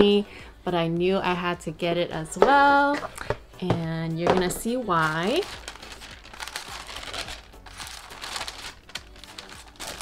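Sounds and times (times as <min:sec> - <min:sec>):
tissue paper rustling: 0:04.8 - 0:10.0.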